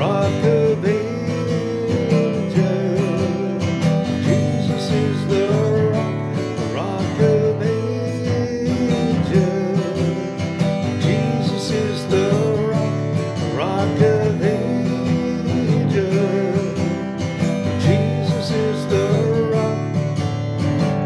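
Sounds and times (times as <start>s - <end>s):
man singing: 0.0s - 20.2s
acoustic guitar strumming: 0.0s - 21.0s.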